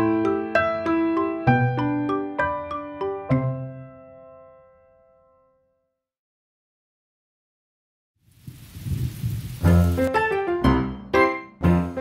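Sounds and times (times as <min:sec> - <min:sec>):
rain: 0:08.2 - 0:10.1
low rumble of thunder: 0:08.4 - 0:10.0.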